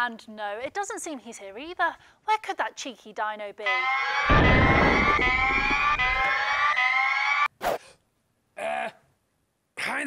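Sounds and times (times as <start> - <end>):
rising siren-like tone: 3.7 - 7.5
low rumbling explosion boom: 4.3 - 6.3.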